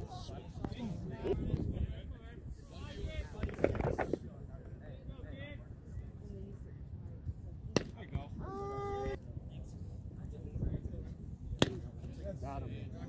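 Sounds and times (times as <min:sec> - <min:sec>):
outdoor crowd: 0:00.0 - 0:13.0.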